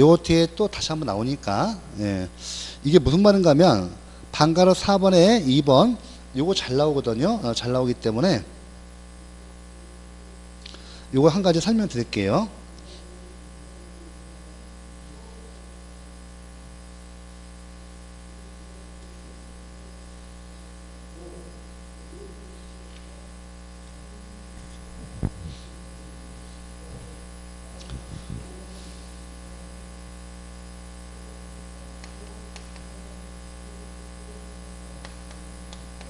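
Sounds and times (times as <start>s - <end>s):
low electrical mains hum: 0.0s - 36.0s
microphone handling thumps: 24.6s - 25.8s, 27.8s - 28.8s.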